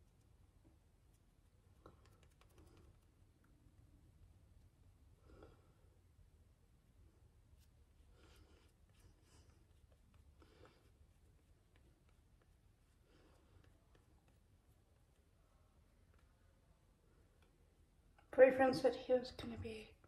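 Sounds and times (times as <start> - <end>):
faint soft rustles: 7.0 - 20.0.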